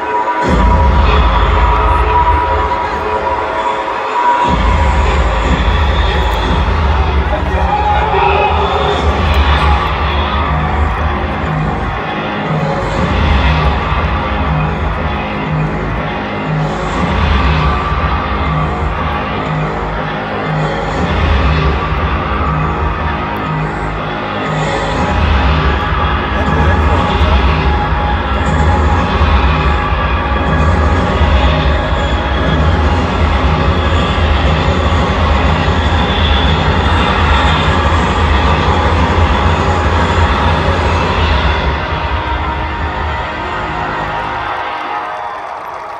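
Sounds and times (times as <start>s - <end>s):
music with heavy bass beat: 0.0s - 44.8s
voice over music: 0.0s - 45.4s.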